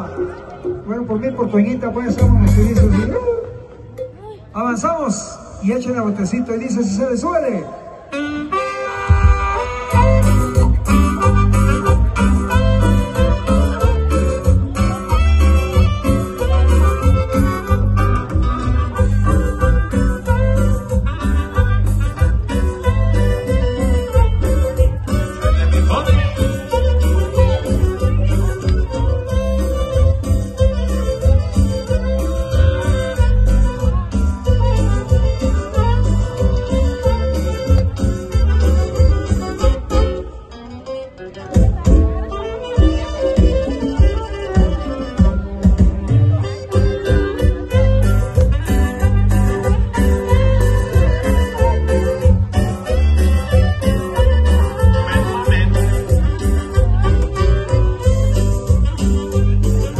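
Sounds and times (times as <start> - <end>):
bass and drum beat: 2.0 - 3.2, 9.0 - 40.3, 41.4 - 59.9
held wind instrument notes: 7.8 - 59.9.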